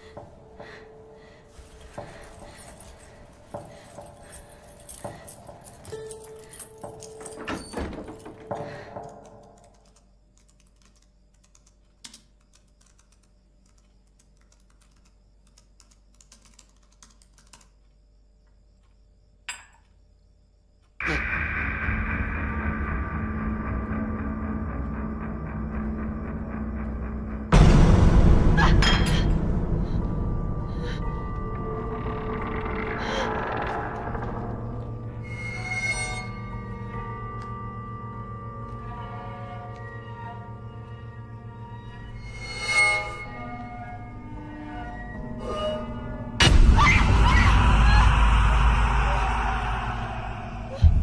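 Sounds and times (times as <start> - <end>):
tense horror music: 0.0 - 10.1, 21.0 - 51.0
loud sustained drone: 46.0 - 51.0.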